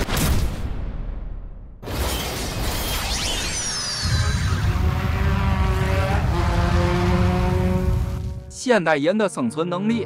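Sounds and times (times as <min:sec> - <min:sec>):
cartoon whirring effect: 0:02.0 - 0:06.0.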